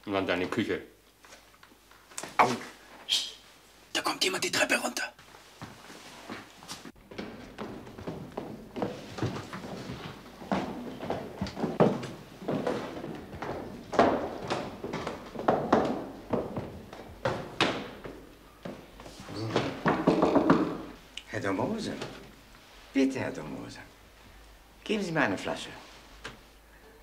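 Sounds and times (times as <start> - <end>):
footsteps on stairs: 5.6 - 21.0
knocks on wooden door: 19.8 - 20.9.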